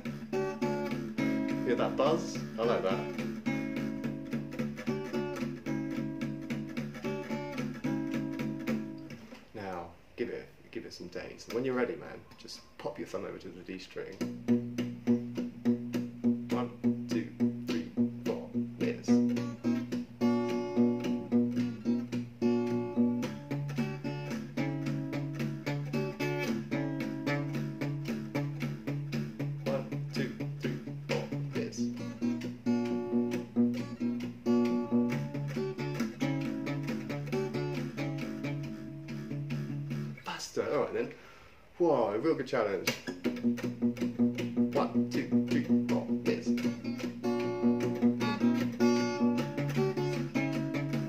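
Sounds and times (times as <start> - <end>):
fingerstyle acoustic guitar: 0.0 - 9.5, 14.2 - 40.2, 42.8 - 51.0.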